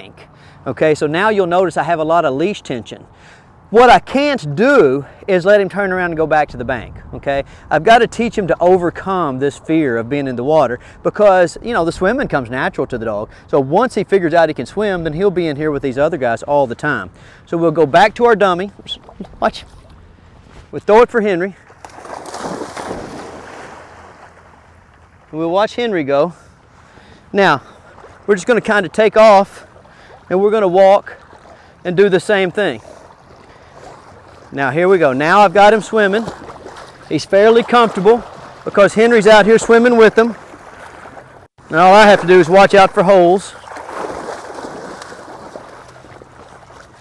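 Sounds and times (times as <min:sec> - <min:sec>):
water sloshing and lapping: 0:15.4 - 0:20.8, 0:21.5 - 0:47.0
dog splashing through water: 0:21.7 - 0:24.5, 0:35.9 - 0:38.8, 0:43.5 - 0:47.0.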